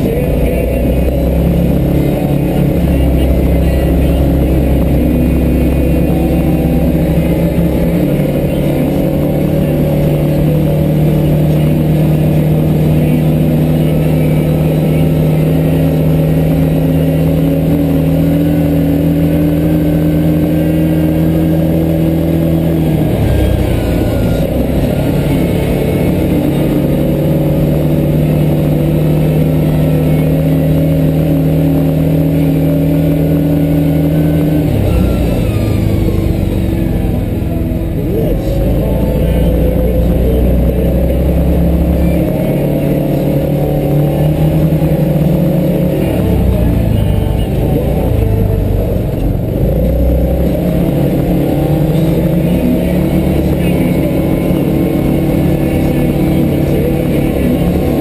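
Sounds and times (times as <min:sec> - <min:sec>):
off-road vehicle engine running: 0:00.0 - 0:58.0.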